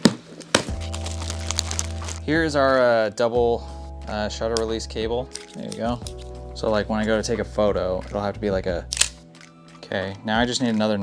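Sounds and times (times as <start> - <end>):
cardboard box cracking open: 0.0 - 2.2
background music: 0.0 - 11.0.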